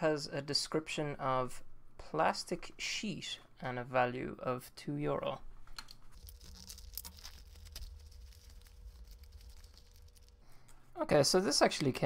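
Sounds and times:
plastic packaging crinkling and tearing: 5.8s - 10.4s.

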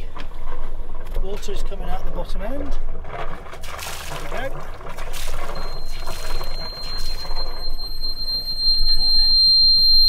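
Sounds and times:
water splashing from exhaust: 2.8s - 8.6s
warning buzzer high tone: 5.3s - 10.0s.

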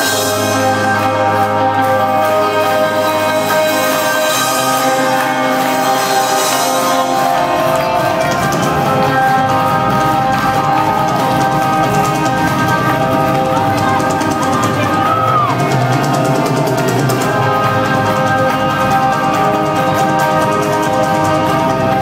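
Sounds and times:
drum kit: 0.0s - 22.0s
electric guitars: 0.0s - 22.0s.

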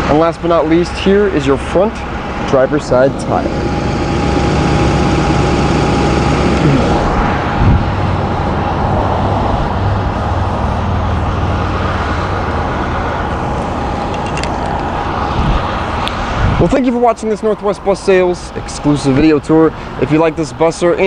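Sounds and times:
thin steady whine: 0.0s - 20.8s
vehicle engine running: 0.0s - 21.0s.

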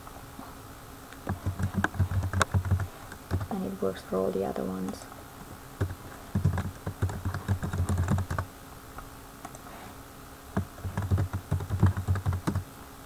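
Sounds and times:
typing on computer keyboard: 1.2s - 3.5s, 5.8s - 8.4s, 10.6s - 12.6s.

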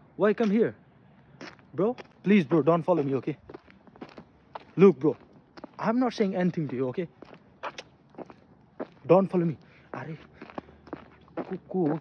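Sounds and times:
footsteps outdoors: 0.0s - 12.0s.

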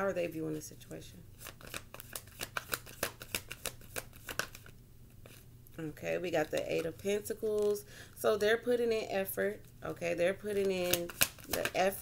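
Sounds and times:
cards being shuffled: 1.4s - 5.5s, 6.3s - 7.8s, 10.5s - 12.0s.

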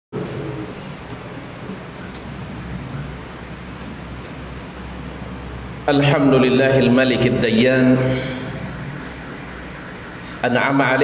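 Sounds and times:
low electrical hum: 0.2s - 11.0s
microphone hiss: 0.2s - 11.0s.

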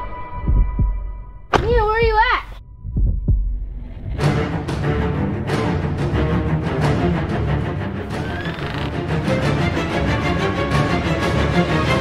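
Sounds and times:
heartbeat double beat: 0.3s - 4.2s.

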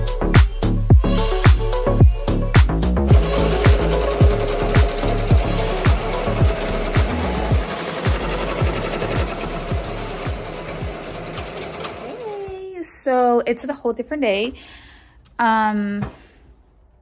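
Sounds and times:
background music with beat: 0.0s - 12.0s
embroidery machine clattering: 3.1s - 12.4s.

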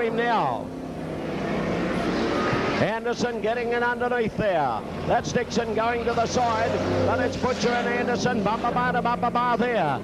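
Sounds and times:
racing car engines droning: 0.0s - 10.0s.

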